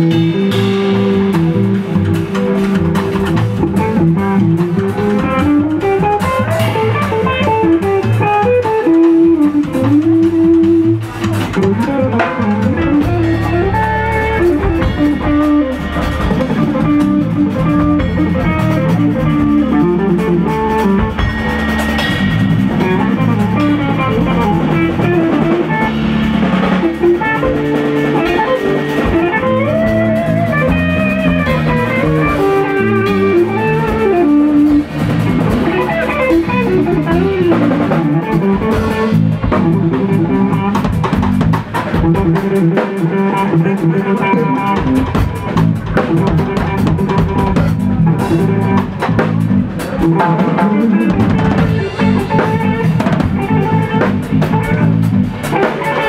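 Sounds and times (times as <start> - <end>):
drum kit: 0.0 - 56.0
electric guitar lead: 0.0 - 56.0
low bass: 0.0 - 56.0.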